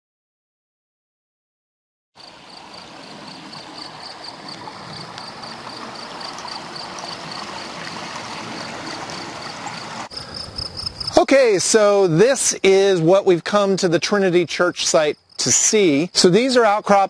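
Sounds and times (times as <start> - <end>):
flowing water rushing: 2.2 - 10.1
insect chirping: 2.2 - 11.5, 14.9 - 17.0.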